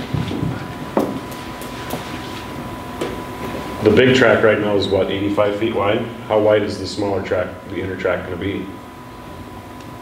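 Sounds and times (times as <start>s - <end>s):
low room rumble: 0.0s - 10.0s
thin steady whine: 0.0s - 10.0s.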